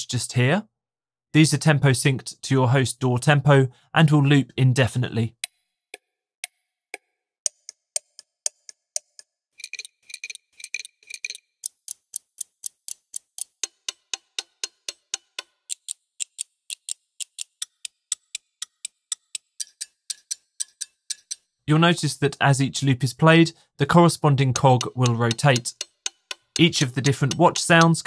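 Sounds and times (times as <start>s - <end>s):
pocket watch ticking: 7.4s - 21.5s, 24.0s - 28.0s.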